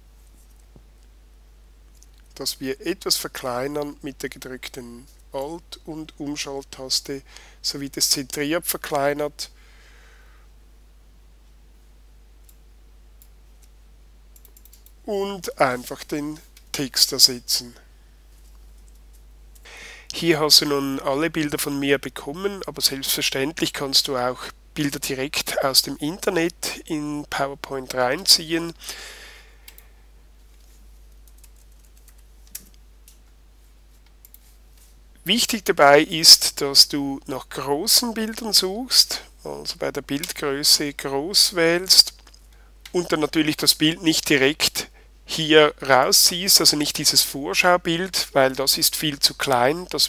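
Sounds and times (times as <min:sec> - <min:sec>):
faint room hiss: 0:00.0 - 0:50.0
faint keyboard typing: 0:00.2 - 0:01.1, 0:13.2 - 0:15.1, 0:17.7 - 0:19.7, 0:29.6 - 0:35.0, 0:40.1 - 0:40.4
computer mouse click: 0:14.4 - 0:15.0.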